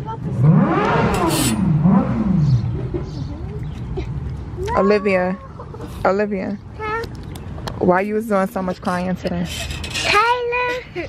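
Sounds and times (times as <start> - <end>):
young child crying: 4.6 - 5.7.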